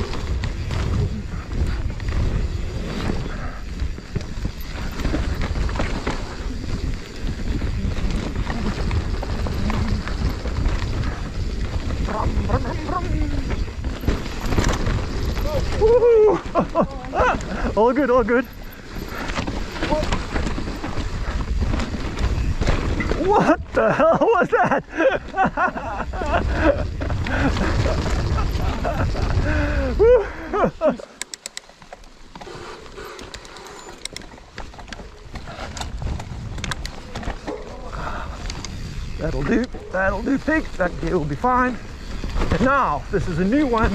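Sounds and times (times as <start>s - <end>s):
wind buffeting microphone: 0.0s - 24.0s, 24.8s - 30.9s, 34.1s - 43.9s
bike tyres rumbling and rattling: 0.0s - 43.9s
wind on microphone: 25.3s - 30.6s, 35.3s - 40.3s.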